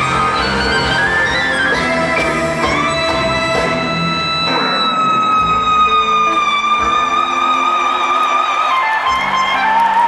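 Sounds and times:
quiet band backing: 0.0 - 10.0.

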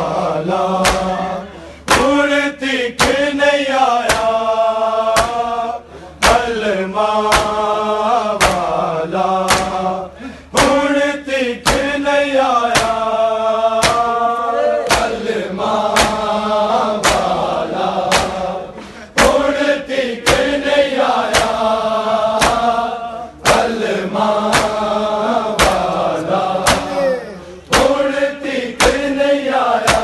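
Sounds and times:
men chanting a lament: 0.0 - 30.0
open-hand chest-beating slaps: 0.7 - 1.2, 1.9 - 2.3, 3.0 - 3.4, 4.0 - 4.4, 5.1 - 5.6, 6.2 - 7.7, 8.3 - 8.8, 9.4 - 9.9, 10.6 - 10.9, 11.6 - 12.0, 12.6 - 13.1, 13.8 - 16.4, 17.0 - 18.6, 19.2 - 21.7, 22.3 - 27.0, 27.6 - 28.2, 28.8 - 29.2, 29.8 - 30.0.

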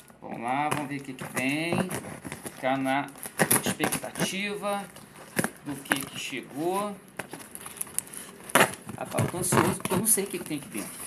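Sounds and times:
tape tearing: 0.0 - 11.0
knife cutting packing tape: 0.4 - 11.0.

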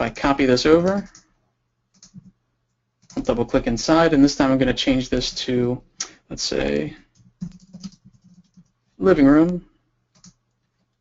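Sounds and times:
typing on computer keyboard: 0.8 - 1.3, 1.9 - 2.4, 3.0 - 3.4, 7.1 - 8.8, 10.1 - 10.4.

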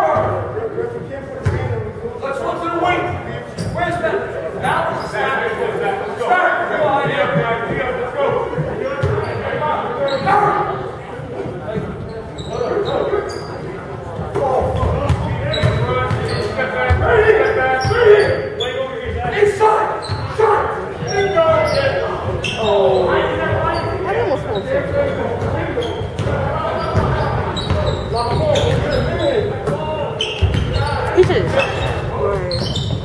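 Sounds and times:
people shouting and talking: 0.0 - 33.0
sneakers squeaking: 3.0 - 4.0, 8.3 - 10.7, 11.4 - 19.2, 19.9 - 33.0.

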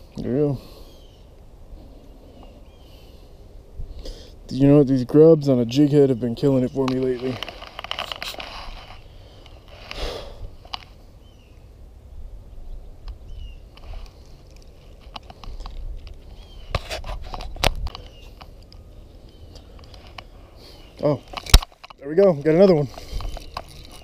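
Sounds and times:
fishing reel handling rustle: 6.8 - 10.0, 13.8 - 20.4, 21.0 - 24.0.

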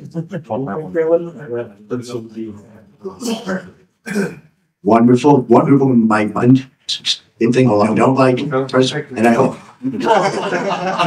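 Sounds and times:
man clearing throat: 3.2 - 4.6.

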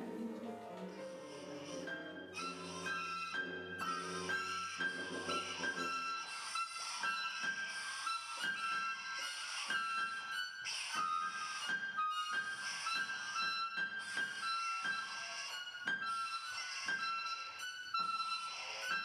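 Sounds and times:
high flute-like tones: 1.0 - 19.0.

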